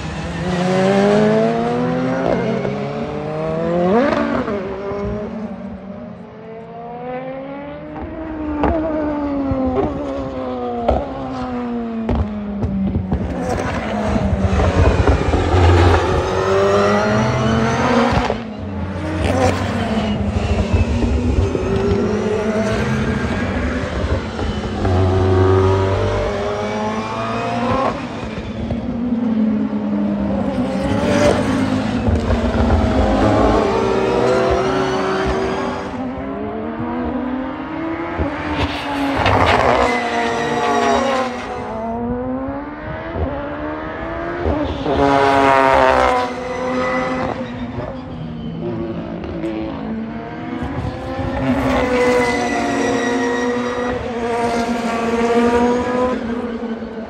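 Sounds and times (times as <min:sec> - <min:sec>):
race car engines revving: 0:00.0 - 0:57.0
race cars passing loudly: 0:00.0 - 0:57.0.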